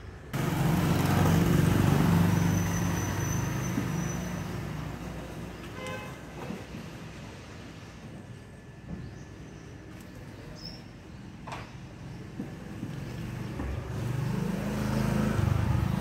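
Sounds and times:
vehicle engine running: 0:00.4 - 0:04.8.

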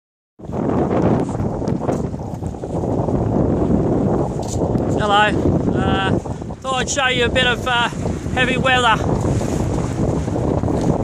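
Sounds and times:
strong wind buffeting microphone: 0:00.4 - 0:11.0.

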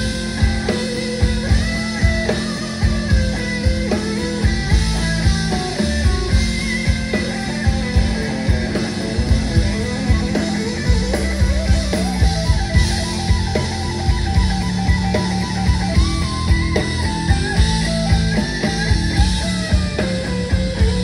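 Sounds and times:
bass guitar: 0:00.0 - 0:21.0
drum kit beat: 0:00.0 - 0:21.0
electric guitar lead lines: 0:00.0 - 0:21.0.

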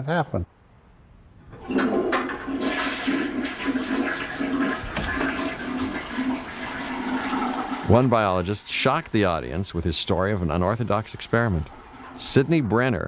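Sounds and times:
toilet flushing: 0:01.5 - 0:13.0.

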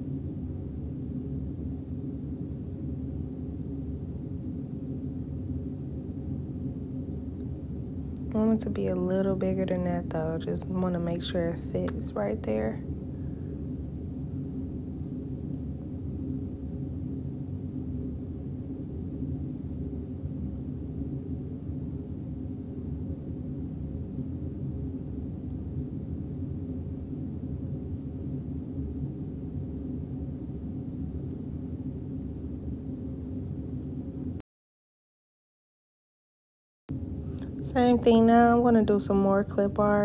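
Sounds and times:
steady low hum: 0:00.0 - 0:34.4, 0:36.9 - 0:40.0.

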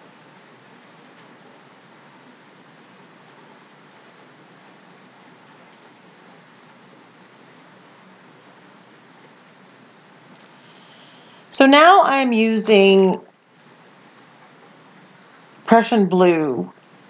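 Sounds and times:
faint background hiss: 0:00.0 - 0:17.0.

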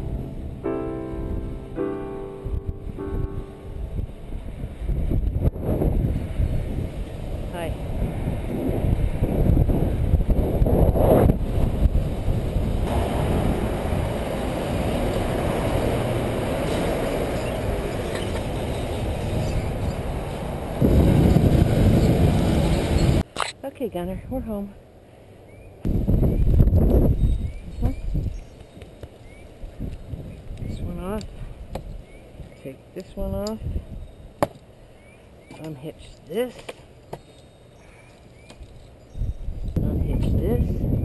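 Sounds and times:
piano music: 0:00.0 - 0:04.9
road traffic rumble: 0:00.0 - 0:26.8
wind buffeting microphone: 0:02.4 - 0:23.3, 0:25.8 - 0:35.7, 0:37.8 - 0:41.0.

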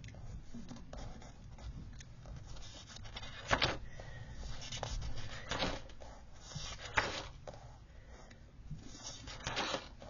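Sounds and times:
paper pages rustling: 0:02.4 - 0:07.4, 0:08.8 - 0:10.0.

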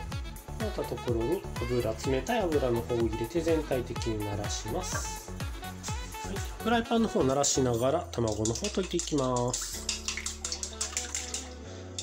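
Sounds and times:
chopsticks beating eggs in bowl: 0:08.1 - 0:12.0
chopsticks clicking against bowl: 0:08.2 - 0:12.0.

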